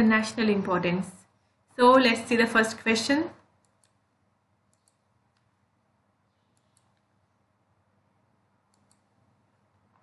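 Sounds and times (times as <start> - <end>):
computer mouse clicks: 3.6 - 5.6, 6.3 - 7.1, 8.6 - 10.0.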